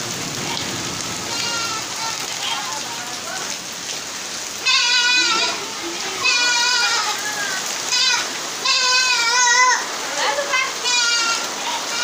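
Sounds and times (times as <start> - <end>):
heavy rain and hail on roof tiles: 0.0 - 12.0.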